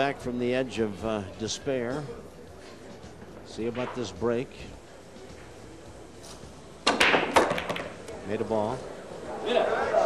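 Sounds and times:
cue ball breaking racked balls: 6.8 - 8.1.

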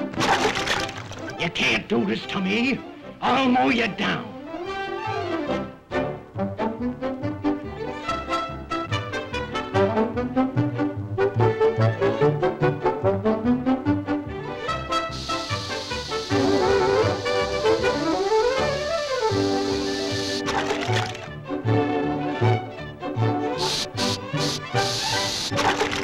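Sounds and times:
brass-led orchestral cartoon music: 0.0 - 26.0
steady hiss: 14.9 - 21.3, 23.6 - 26.0.

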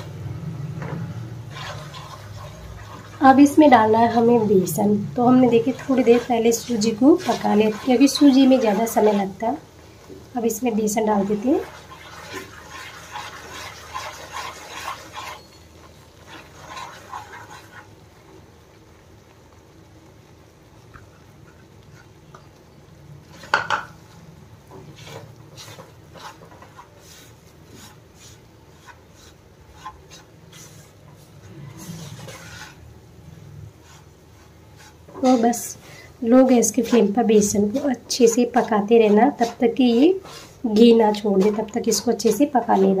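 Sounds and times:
spatula scraping a pan: 0.8 - 9.5, 10.6 - 18.0, 21.3 - 22.6, 23.2 - 43.0.

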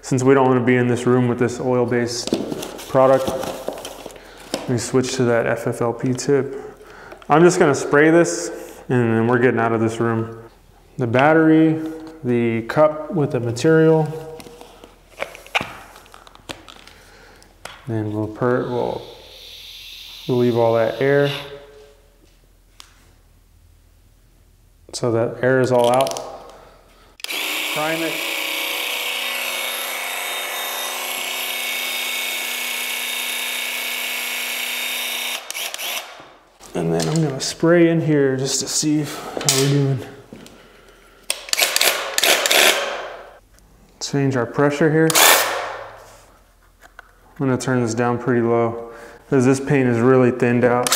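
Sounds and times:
paint sprayer pump hissing: 19.0 - 21.5.

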